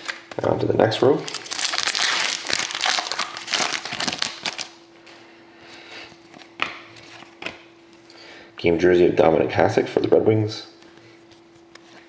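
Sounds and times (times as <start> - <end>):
foil wrapper tearing and crinkling: 0.0 - 0.2, 1.2 - 4.8.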